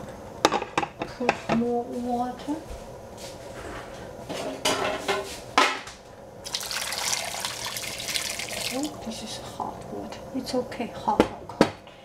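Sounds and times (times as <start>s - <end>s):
water pouring into metal pot: 6.4s - 9.1s.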